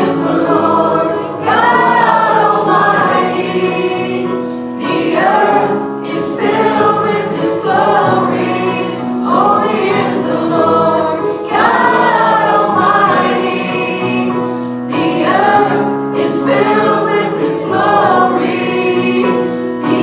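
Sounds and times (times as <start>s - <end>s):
people singing into microphones: 0.0s - 20.0s.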